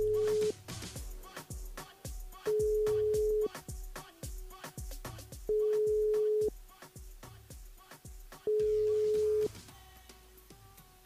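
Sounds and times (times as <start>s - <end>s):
telephone ringback tone: 0.0s - 0.5s, 2.5s - 3.5s, 5.5s - 6.5s, 8.5s - 9.5s
background music with steady beat: 0.0s - 11.0s.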